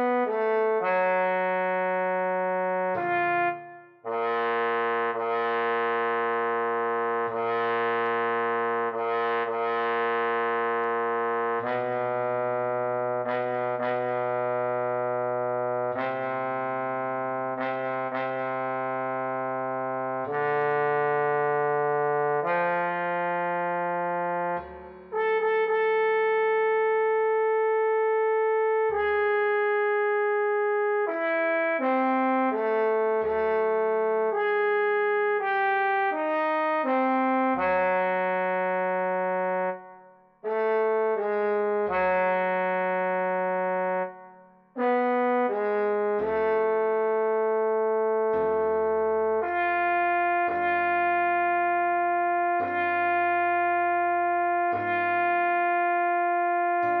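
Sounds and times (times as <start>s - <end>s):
trombone slow melody: 0.0s - 57.0s.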